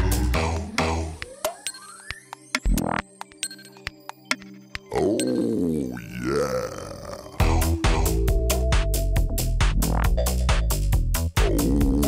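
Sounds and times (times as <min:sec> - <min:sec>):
deep drawn-out voice-like electronic sound: 0:04.9 - 0:08.1, 0:11.4 - 0:12.0.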